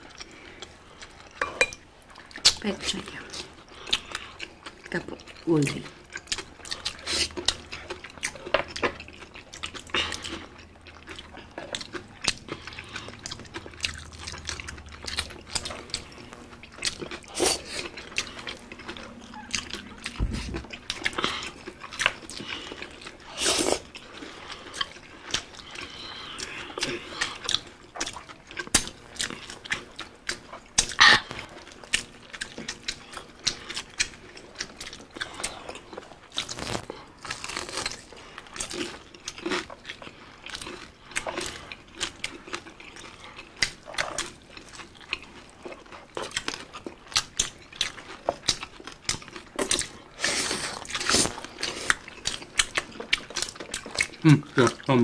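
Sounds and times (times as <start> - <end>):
wet chewing: 0.0 - 55.0
crunching bites of crispy food: 24.6 - 55.0.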